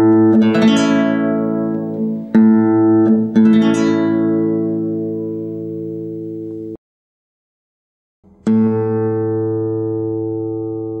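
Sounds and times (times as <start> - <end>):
classical guitar chord ringing: 0.0 - 6.8, 8.3 - 11.0.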